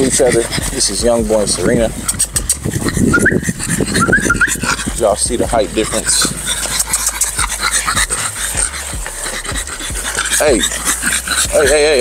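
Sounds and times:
dogs panting: 0:00.0 - 0:12.0.

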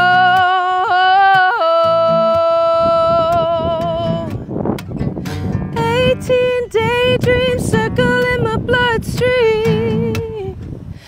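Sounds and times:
woman singing wordless vowel: 0:00.0 - 0:04.4, 0:05.7 - 0:10.6
strummed acoustic guitar: 0:00.0 - 0:11.0.

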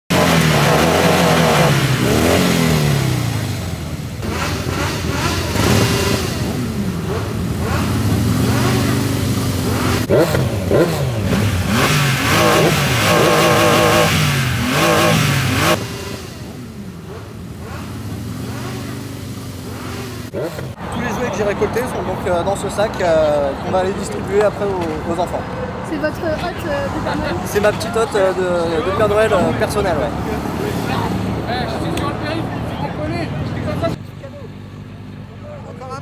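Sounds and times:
motorcycle engines revving: 0:00.1 - 0:36.0.

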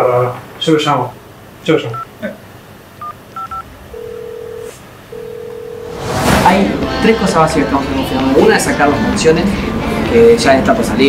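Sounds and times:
phone keypad beeps: 0:03.0 - 0:05.8.

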